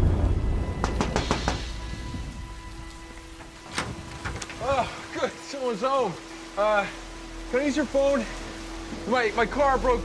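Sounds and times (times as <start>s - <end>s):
low thunder rumble: 0.0s - 4.4s
steady rain: 0.0s - 10.0s.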